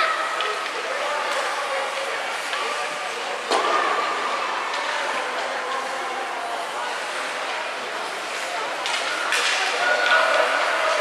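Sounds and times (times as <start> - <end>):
distant indistinct voices: 0.0 - 11.0.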